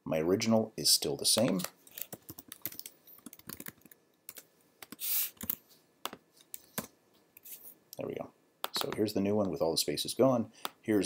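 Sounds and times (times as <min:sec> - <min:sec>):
brief loud hiss: 0:05.0 - 0:05.4.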